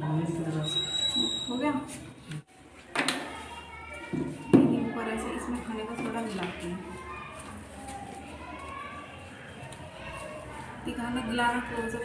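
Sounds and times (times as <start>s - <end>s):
low voices murmuring: 2.4s - 12.0s.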